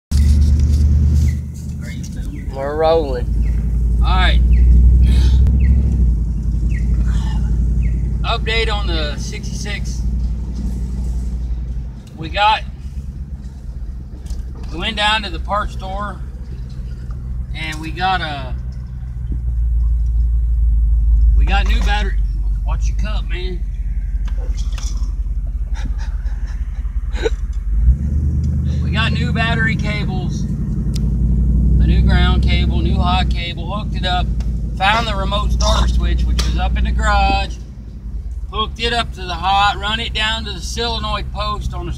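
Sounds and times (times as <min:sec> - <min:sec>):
vehicle engine idling: 0:00.1 - 0:41.9.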